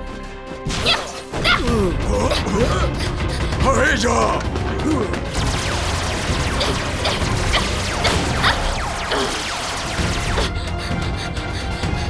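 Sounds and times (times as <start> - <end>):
action music: 0.0 - 12.0
cartoon laser gun zaps: 5.4 - 10.5.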